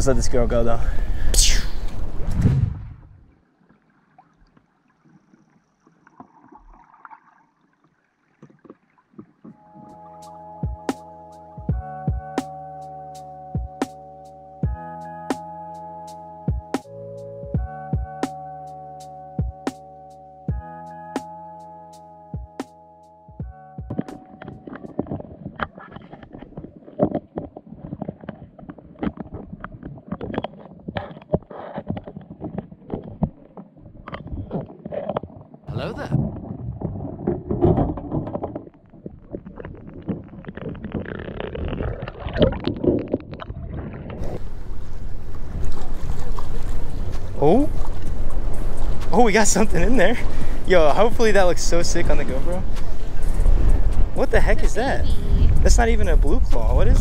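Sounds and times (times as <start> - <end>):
low underwater rumbling: 0.0 - 10.9, 23.3 - 57.0
trap clicks and knocks underwater: 23.8 - 35.4
wind on microphone: 52.0 - 57.0.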